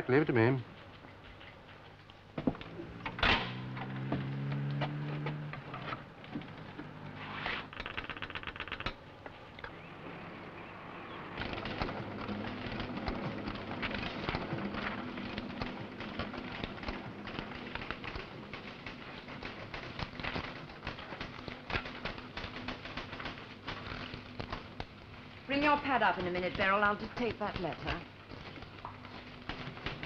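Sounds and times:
paper rustling: 11.4 - 30.0.

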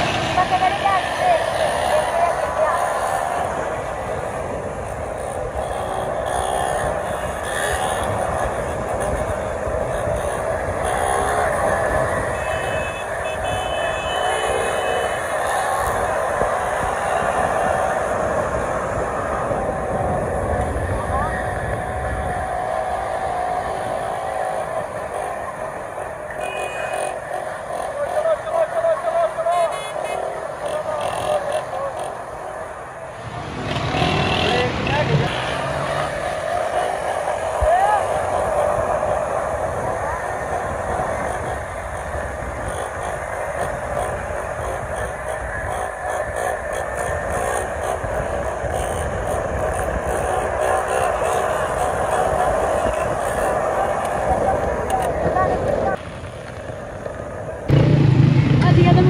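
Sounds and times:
crowd shouting and chattering: 0.0 - 42.8, 48.8 - 59.0
small motorcycle engines revving: 0.0 - 59.0.

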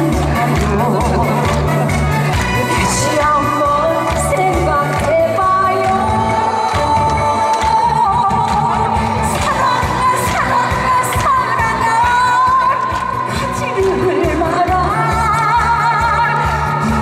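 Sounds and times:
woman singing into a microphone: 0.0 - 2.0, 2.6 - 17.0.

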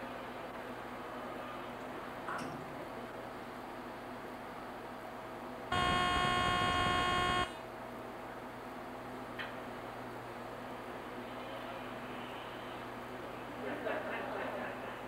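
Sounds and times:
faint equipment hum: 0.0 - 15.0
electronic buzzer tone: 5.7 - 7.6.

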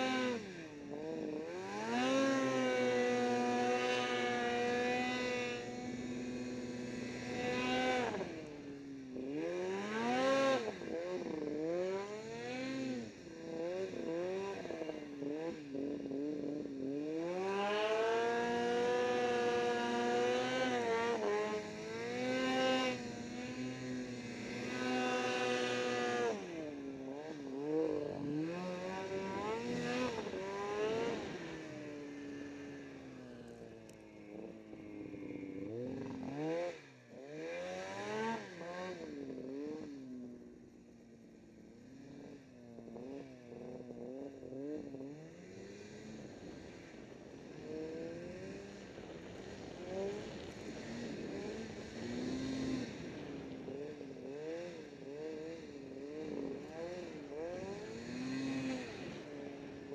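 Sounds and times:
snowmobile engine revving: 0.0 - 40.6, 41.4 - 59.9.

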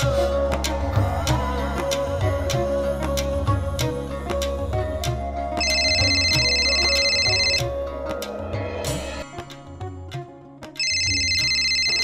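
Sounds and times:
telephone ringing electronic trill: 5.6 - 7.7, 10.8 - 12.0.

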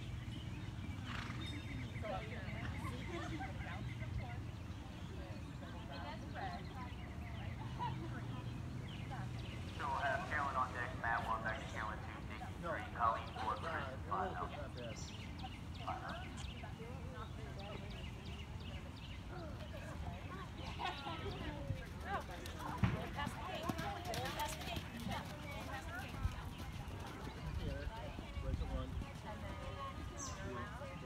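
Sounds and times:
indistinct voices talking: 5.4 - 18.2.

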